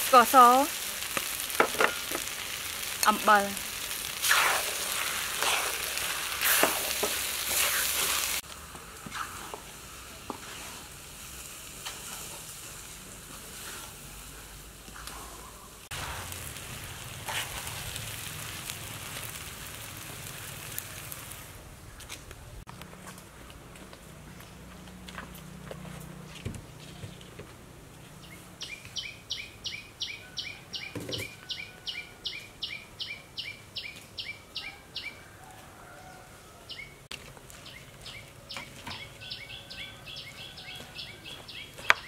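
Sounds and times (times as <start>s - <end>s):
fire popping: 0.0s - 23.3s
wood fire crackling: 0.0s - 26.2s, 37.1s - 42.0s
steady hiss: 15.8s - 21.8s.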